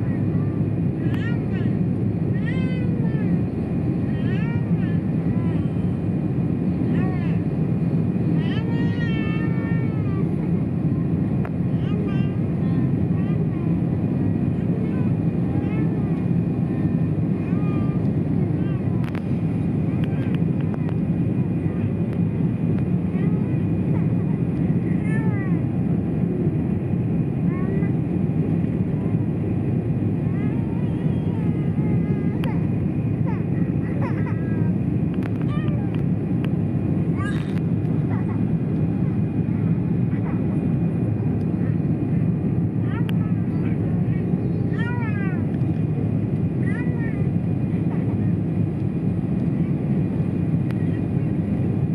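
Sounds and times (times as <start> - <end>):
child's high-pitched vocal sounds: 0.0 - 5.8, 8.4 - 10.4, 11.8 - 19.2, 24.9 - 25.7, 30.2 - 34.8, 37.1 - 38.6, 42.8 - 45.7, 46.6 - 48.2
airliner engine and airflow noise: 0.0 - 51.9.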